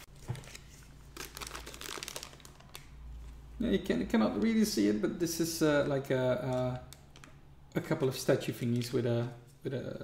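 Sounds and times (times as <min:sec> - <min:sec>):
plastic bag crinkling: 0:00.3 - 0:03.4.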